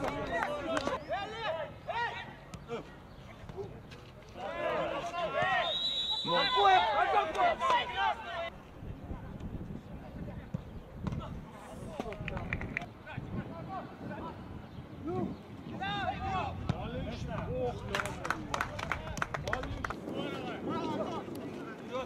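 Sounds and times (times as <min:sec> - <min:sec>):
footballers shouting: 0:04.4 - 0:08.5.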